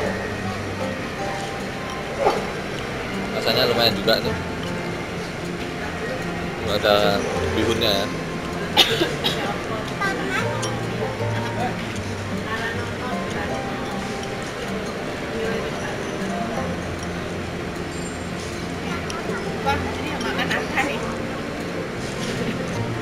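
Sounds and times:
background music: 0.0 - 23.0
people talking: 0.0 - 23.0.

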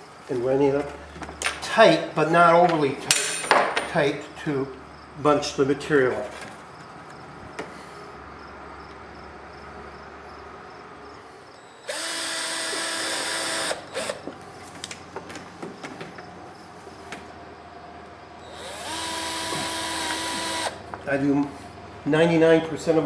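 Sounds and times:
cordless drill driving screws: 11.8 - 14.3, 18.4 - 20.8.

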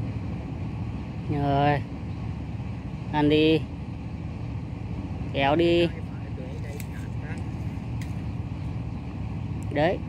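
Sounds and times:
outdoor low rumble: 0.0 - 10.0.

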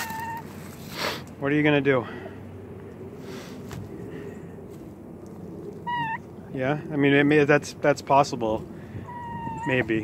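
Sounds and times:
fowl calling: 0.0 - 0.5, 5.8 - 6.3, 9.0 - 9.9.

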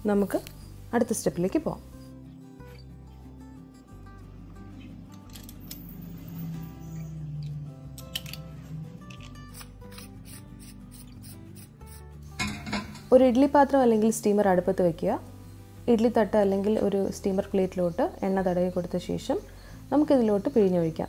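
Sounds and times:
soft background music: 0.0 - 21.0.

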